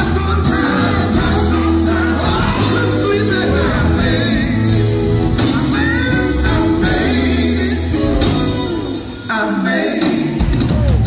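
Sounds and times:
gospel band playing: 0.0 - 11.0
man singing lead: 0.0 - 11.0.

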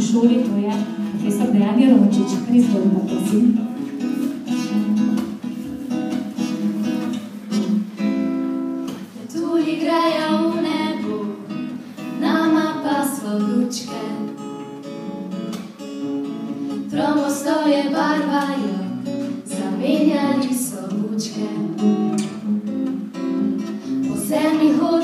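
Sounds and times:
acoustic guitar strumming chords: 0.0 - 25.0
person singing: 9.2 - 14.3.

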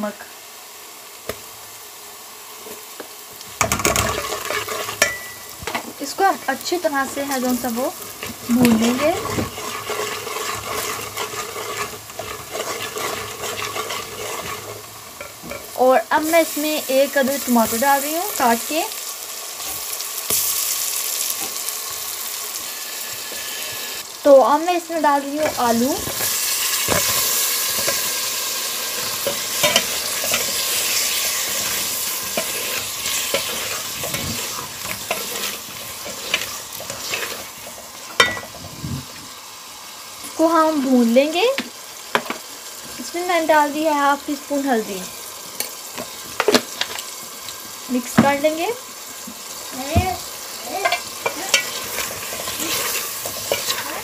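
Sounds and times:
paste sizzling in oil: 0.0 - 54.0
spoon scraping a pan: 3.6 - 5.9, 7.0 - 15.8, 25.4 - 38.7, 50.8 - 54.0.

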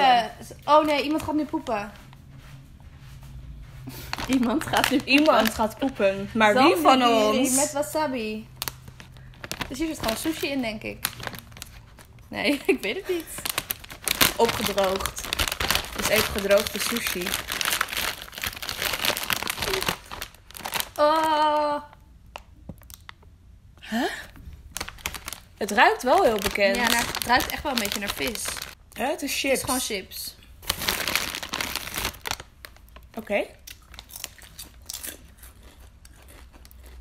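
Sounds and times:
plastic chip bag crinkling: 3.9 - 23.2, 24.6 - 30.0, 30.6 - 37.0.

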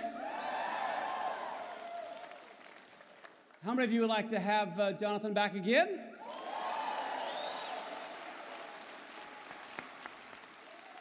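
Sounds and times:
large audience applauding: 0.4 - 3.6, 6.2 - 11.0.

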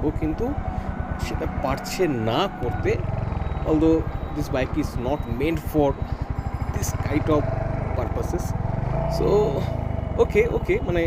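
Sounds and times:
motorcycle engine running at low speed: 0.0 - 11.0.

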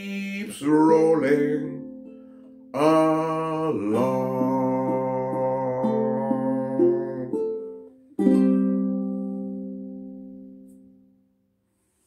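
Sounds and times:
ukulele chord ringing: 0.0 - 11.4
ukulele strummed chord: 0.1 - 11.2.

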